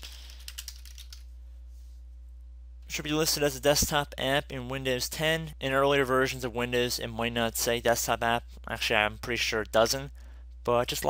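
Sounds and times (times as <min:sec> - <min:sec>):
keyboard keys clicking: 0:00.3 - 0:01.2.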